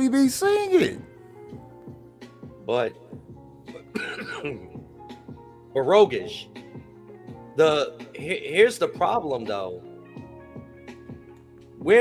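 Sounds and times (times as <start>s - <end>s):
background music: 0.0s - 12.0s
man clearing throat: 3.7s - 4.8s.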